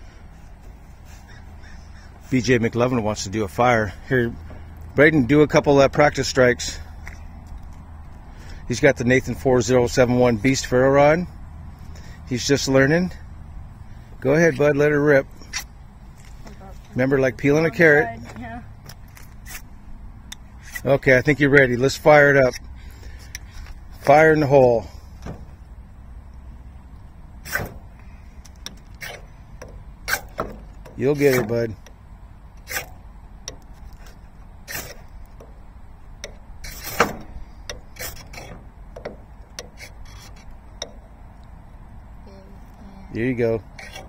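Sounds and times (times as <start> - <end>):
striker scraping ferro rod: 19.3 - 19.7, 20.6 - 21.0, 27.4 - 27.9, 28.6 - 32.0, 32.6 - 35.6, 36.2 - 41.0, 43.6 - 44.0.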